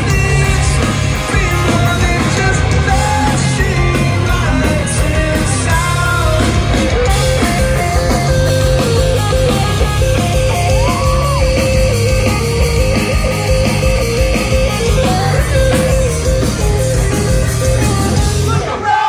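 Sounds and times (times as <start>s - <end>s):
live rock band playing: 0.0s - 19.0s.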